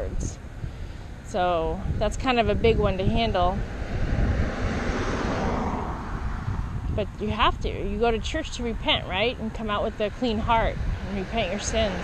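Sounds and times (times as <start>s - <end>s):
wind rumbling on microphone: 0.0s - 12.0s.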